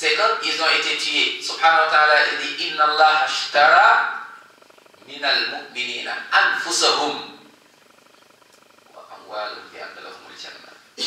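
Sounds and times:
faint rapid buzz: 0.9s - 11.0s.

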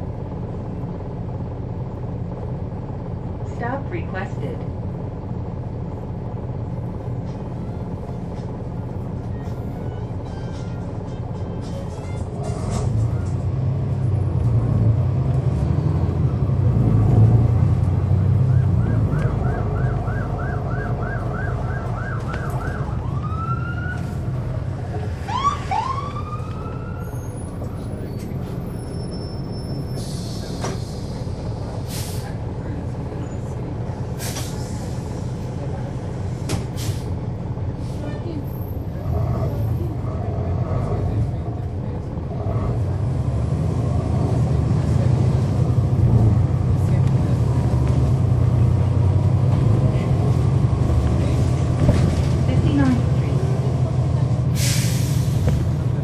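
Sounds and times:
bus diesel engine rumbling: 0.0s - 56.0s
siren wailing: 18.5s - 24.2s, 25.2s - 27.4s.

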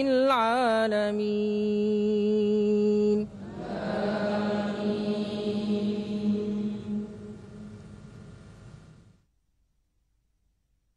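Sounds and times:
chant-like drone: 3.0s - 8.8s.

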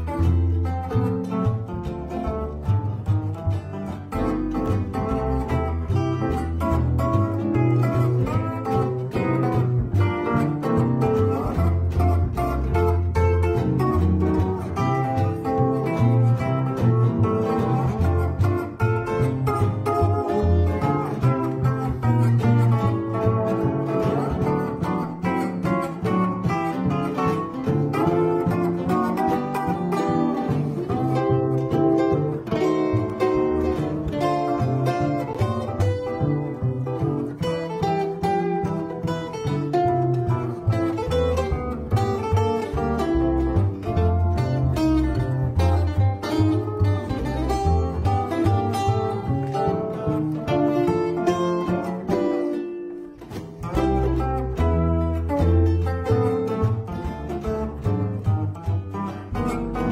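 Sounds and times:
archtop guitar: 0.0s - 59.9s
plucked upright bass: 0.0s - 59.9s
steel guitar: 0.0s - 59.9s.

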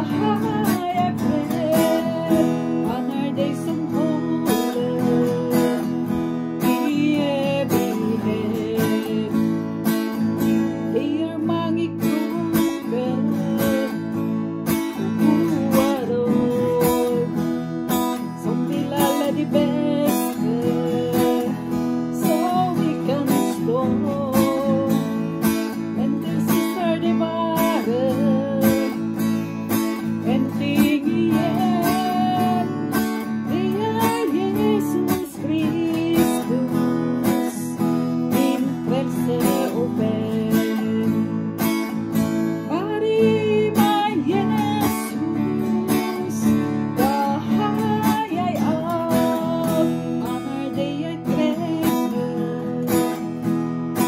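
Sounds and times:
strummed acoustic guitar: 0.0s - 54.0s
woman singing: 0.0s - 54.0s.

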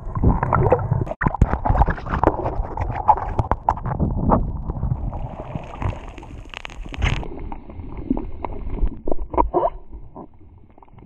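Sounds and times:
sharp clicks and knocks underwater: 0.0s - 7.3s, 7.9s - 11.0s
low rumble of moving water: 0.0s - 11.0s.

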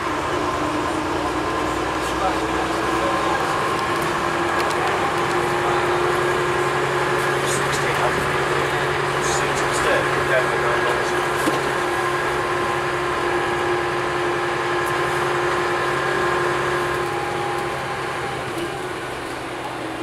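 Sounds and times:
bus diesel engine running: 0.0s - 20.0s.

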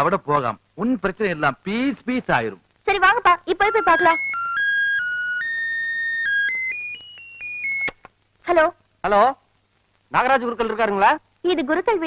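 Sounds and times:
electronic phone ringtone: 3.7s - 8.0s
person speaking: 10.1s - 12.0s.

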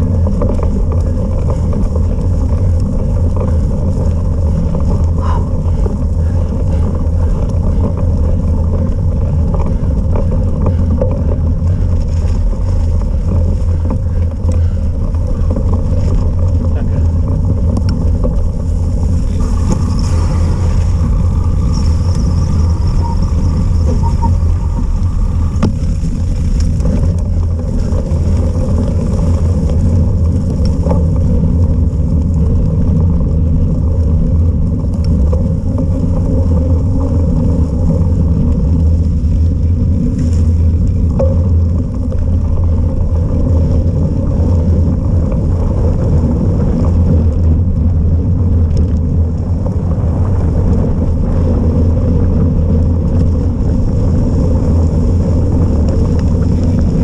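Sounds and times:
loud wind noise on microphone: 0.0s - 57.0s
tyres rolling on mud and tarmac: 0.0s - 57.0s
faint high whine: 17.8s - 30.0s.

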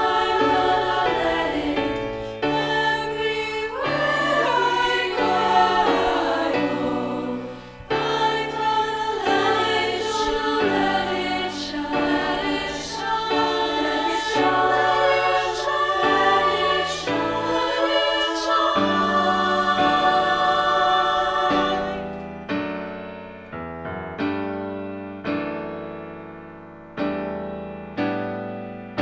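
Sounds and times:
women's choir singing sustained chords: 0.0s - 22.8s.

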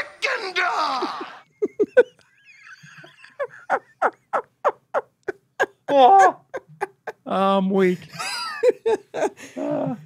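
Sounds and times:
men laughing hard: 0.8s - 7.3s, 8.1s - 10.0s.

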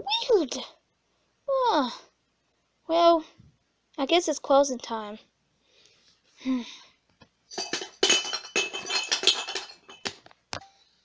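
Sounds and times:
glassy clinks and clatter: 7.5s - 10.2s.

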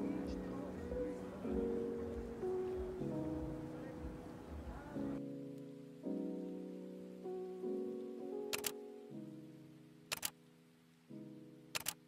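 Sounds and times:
slow piano music: 0.0s - 12.0s
camera shutter double clicks: 8.5s - 8.8s, 10.1s - 10.4s, 11.8s - 12.0s.

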